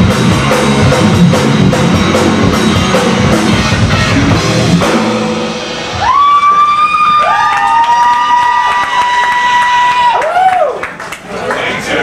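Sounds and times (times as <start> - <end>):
electric guitar feedback: 0.0 - 7.3
live rock band: 0.0 - 7.3.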